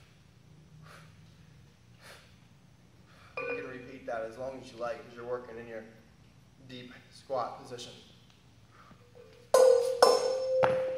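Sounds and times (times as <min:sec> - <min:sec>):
kettlebells clanging: 0:03.4 - 0:03.9, 0:09.2 - 0:10.9.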